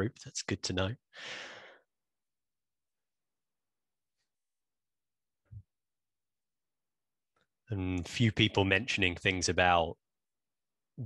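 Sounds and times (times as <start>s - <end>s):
man talking: 0.0s - 1.0s, 7.7s - 10.0s
man breathing into microphone: 1.1s - 1.8s.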